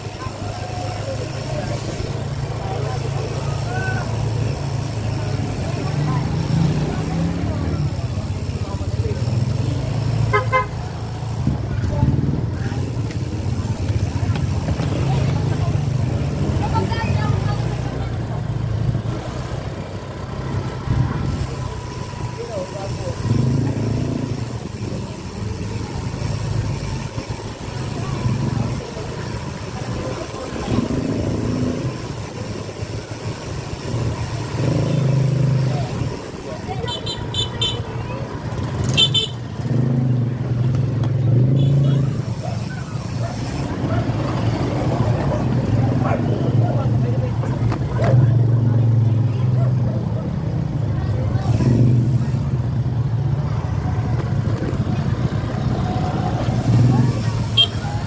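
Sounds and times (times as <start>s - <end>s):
motor scooter engine: 0.0s - 58.0s
people talking on street: 0.0s - 58.0s.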